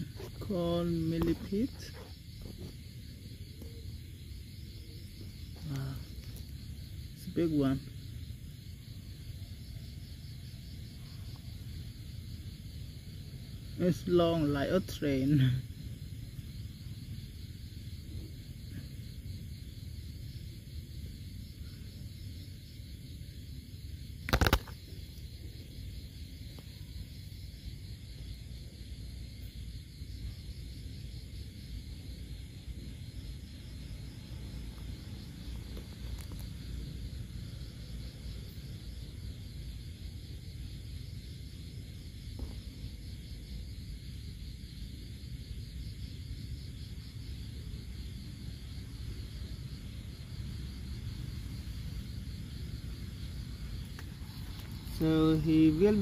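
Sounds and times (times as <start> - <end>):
night insects chirping: 0.0 - 56.0.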